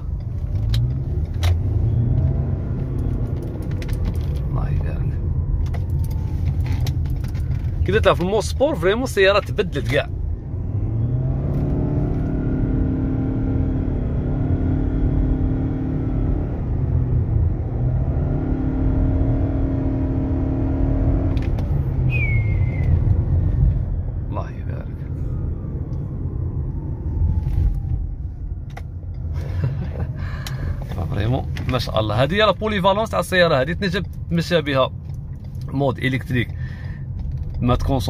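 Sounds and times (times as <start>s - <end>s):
car engine droning: 0.0s - 38.0s
low road rumble: 0.0s - 38.0s.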